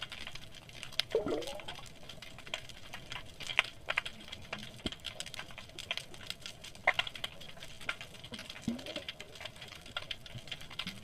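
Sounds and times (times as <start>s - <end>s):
underwater clicking crackle: 0.0s - 11.0s.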